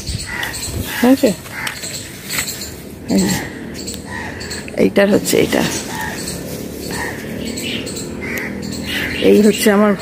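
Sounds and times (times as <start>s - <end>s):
birds chirping: 0.0s - 10.0s
outdoor background noise: 0.0s - 10.0s.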